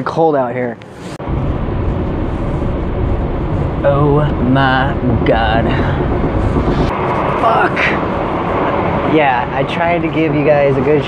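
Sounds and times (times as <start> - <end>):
freight train rumbling: 1.2 - 11.0.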